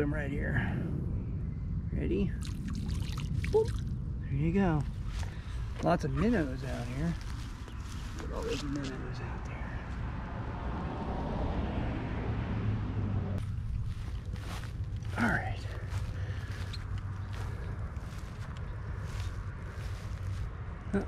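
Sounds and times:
steady low hum: 0.0 - 21.0
footsteps on grass: 4.9 - 9.0, 13.4 - 20.6.

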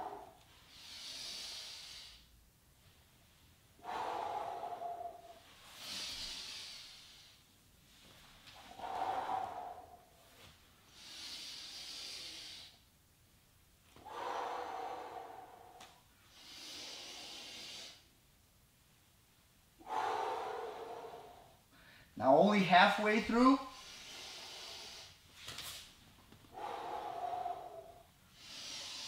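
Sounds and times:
man breathing deeply: 0.0 - 12.9, 13.9 - 18.2, 19.8 - 22.2, 23.6 - 25.8, 26.4 - 29.0.

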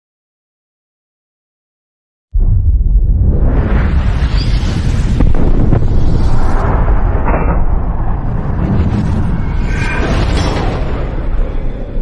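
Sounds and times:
deep rumbling blast: 2.4 - 12.0.

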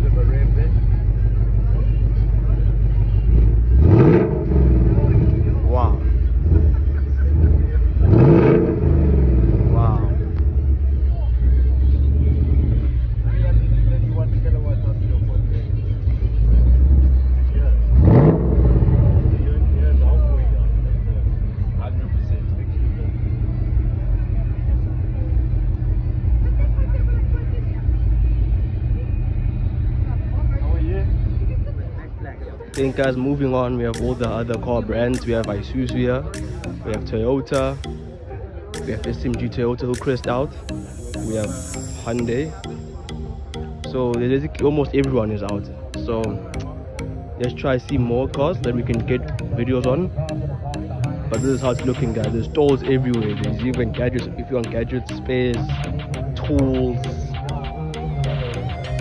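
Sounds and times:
car engine idling and revving: 0.0 - 59.0.

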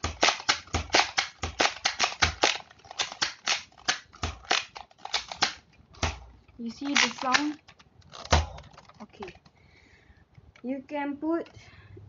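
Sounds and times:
sharp plastic clicks of toy blaster: 0.0 - 9.4.

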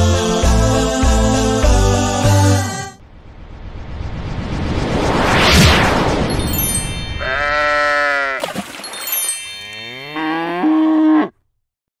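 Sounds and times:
rushing noise: 3.0 - 7.6.

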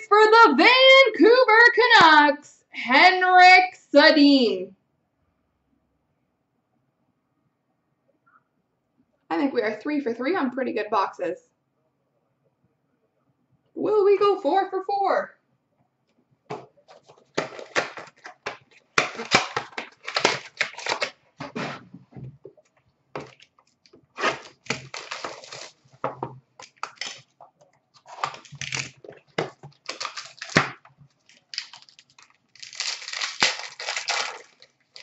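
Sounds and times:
plastic and cardboard crinkling: 16.5 - 35.0.

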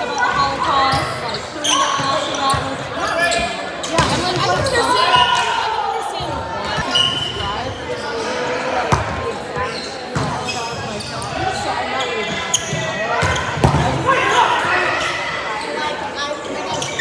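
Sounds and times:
players calling and chatter: 0.0 - 17.0.

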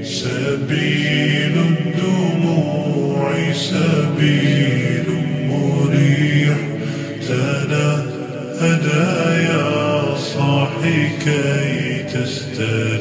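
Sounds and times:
solo voice chanting: 0.0 - 13.0.

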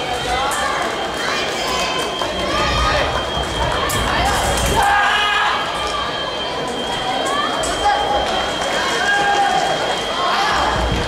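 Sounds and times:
voices echoing across a hall: 0.0 - 11.0.

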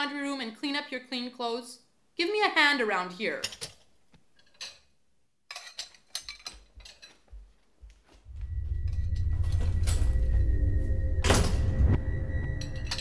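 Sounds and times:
dishes and cutlery clinking: 3.4 - 4.9, 5.5 - 7.5
loud low drone: 8.3 - 13.0.

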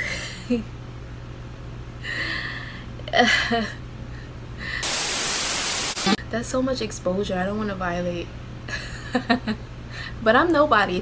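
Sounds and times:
room hum: 0.0 - 11.0
white-noise static: 4.8 - 6.2.

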